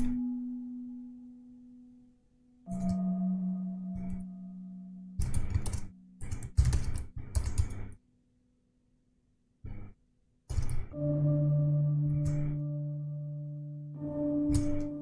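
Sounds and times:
ambient music with held tones: 0.0 - 7.7, 10.5 - 15.0
typing on computer keyboard: 5.2 - 8.0.

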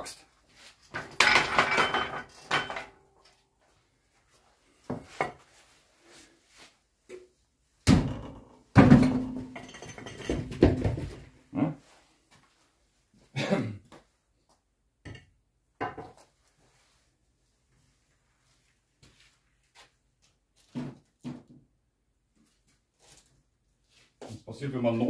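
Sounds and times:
metal tools knocking and clattering: 0.9 - 3.0, 9.2 - 11.1.

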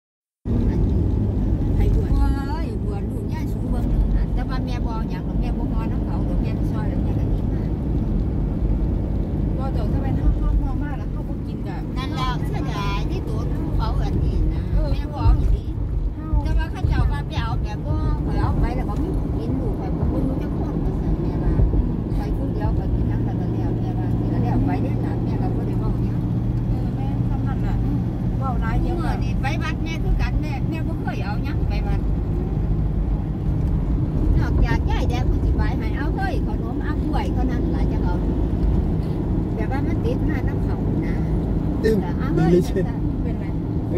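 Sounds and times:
car road and engine noise: 0.3 - 43.9
people talking: 1.7 - 7.7, 9.6 - 32.1, 34.3 - 38.3, 39.6 - 41.2, 41.8 - 43.5.

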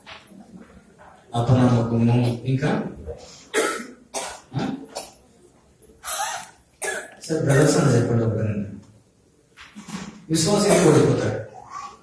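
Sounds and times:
man coughing: 10.6 - 12.0.

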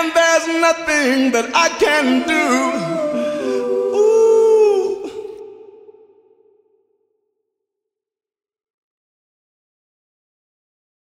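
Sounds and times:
man singing held note: 1.4 - 5.8.

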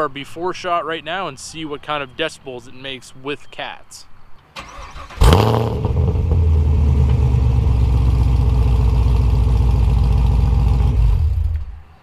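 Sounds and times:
loud car exhaust: 5.2 - 11.8.

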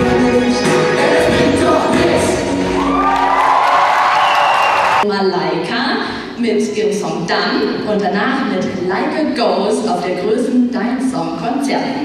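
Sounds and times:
live pop song: 0.0 - 5.0
audience cheering: 2.6 - 5.0.

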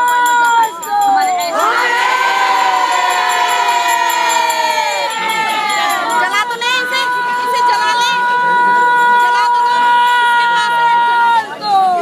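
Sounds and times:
crowd chanting long shouted note: 1.6 - 6.2.

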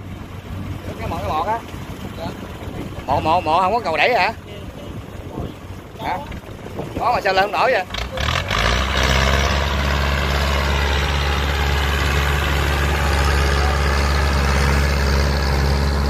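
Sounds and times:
tractor diesel engine straining: 0.0 - 16.0.

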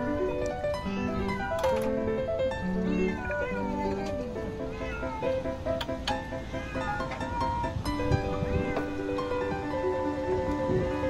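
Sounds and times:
cats meowing: 0.0 - 1.9, 2.6 - 9.7
music of held notes: 0.0 - 11.0.

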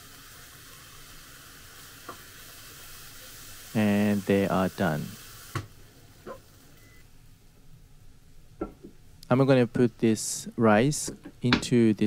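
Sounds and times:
rice sizzling in a frying pan: 0.0 - 6.9.

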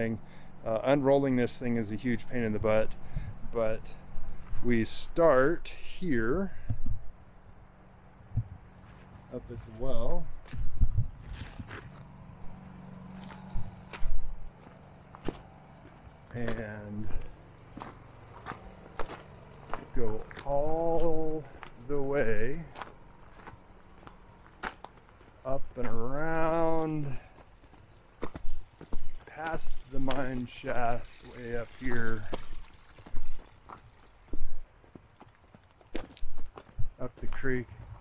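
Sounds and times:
footsteps on gravel: 2.1 - 5.2, 8.4 - 38.0.

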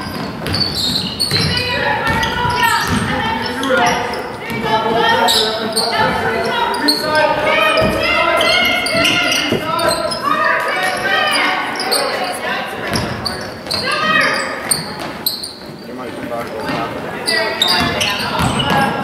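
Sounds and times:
sneakers squeaking: 0.0 - 19.0
people calling out: 1.4 - 15.1
basketball bouncing on hardwood: 8.9 - 10.2.

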